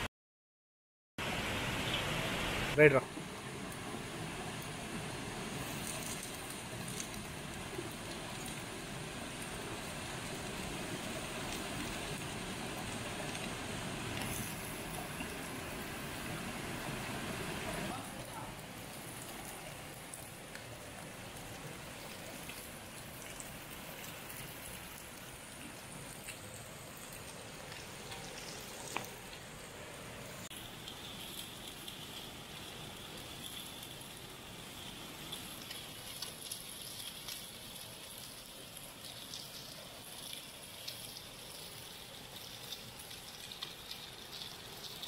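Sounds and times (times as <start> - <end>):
stream water rushing: 1.2 - 45.0
fish sizzling in hot oil: 3.9 - 29.5, 30.3 - 45.0.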